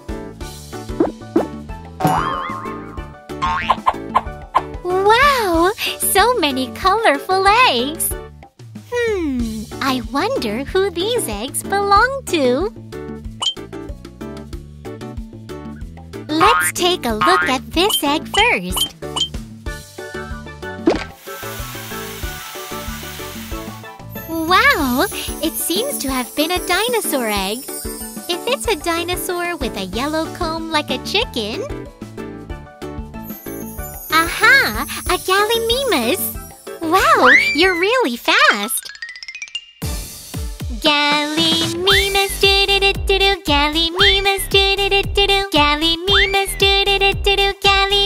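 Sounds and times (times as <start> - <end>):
children's background music: 0.0 - 48.0
wobbling warbling tone: 2.0 - 4.3
sparkling hiss effect: 21.2 - 28.5.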